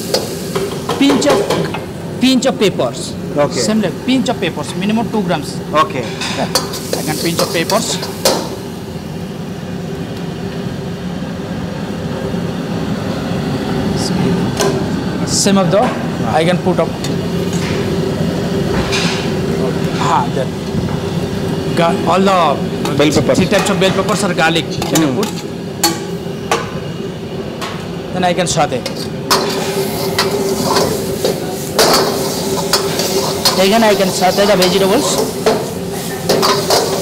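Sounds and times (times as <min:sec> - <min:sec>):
gas burner and extraction roar: 0:00.0 - 0:37.0
steel ladle scraping a wok: 0:28.9 - 0:37.0.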